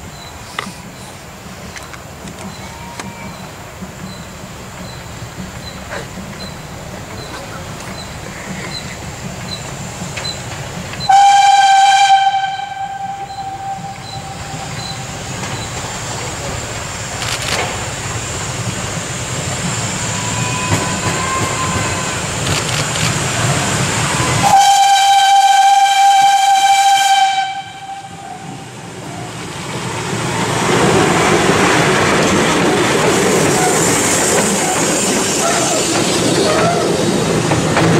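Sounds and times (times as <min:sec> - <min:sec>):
steam locomotive passing: 0:00.0 - 0:37.9
steam locomotive whistle: 0:11.0 - 0:15.4, 0:20.0 - 0:22.4, 0:24.0 - 0:28.7.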